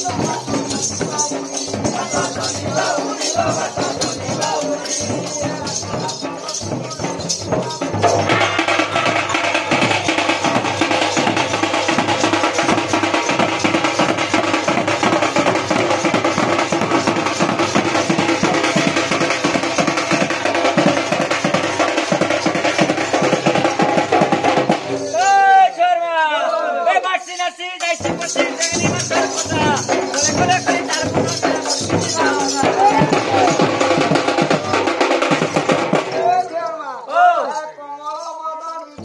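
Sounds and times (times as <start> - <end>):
barrel drum beating: 0.0 - 25.1, 27.9 - 36.5.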